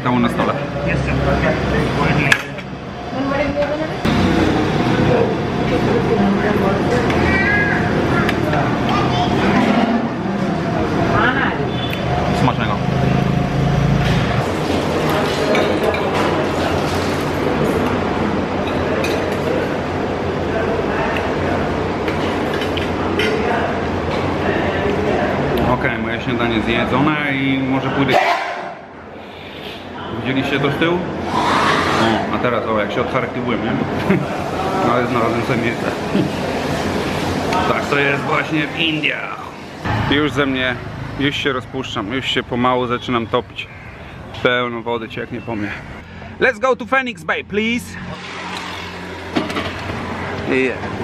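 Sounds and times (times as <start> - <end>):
road and traffic noise: 0.0 - 51.0.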